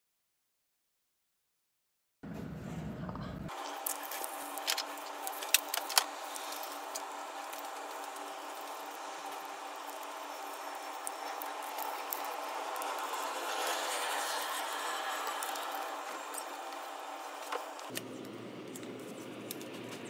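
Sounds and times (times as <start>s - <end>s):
paper rustling and folding: 3.5s - 20.0s.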